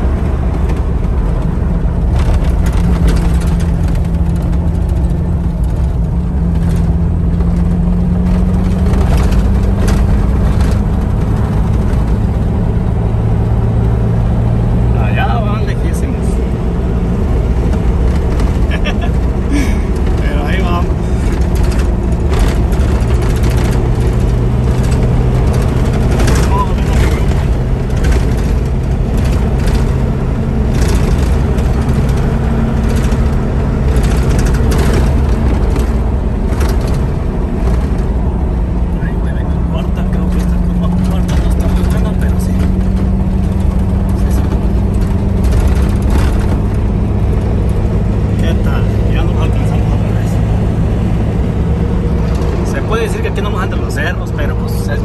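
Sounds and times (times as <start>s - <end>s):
vehicle engine and road noise: 0.0s - 55.0s.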